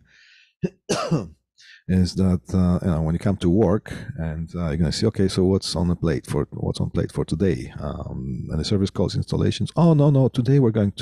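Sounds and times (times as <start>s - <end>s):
faint breath: 0.0s - 0.6s, 1.6s - 1.9s
man clearing throat: 0.6s - 1.4s.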